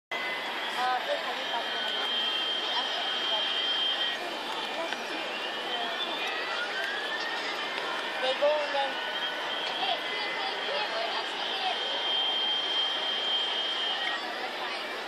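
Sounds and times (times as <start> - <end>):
outdoor background noise: 0.1 - 15.0
faint voices: 0.2 - 15.0
slow rising whine: 0.2 - 15.0.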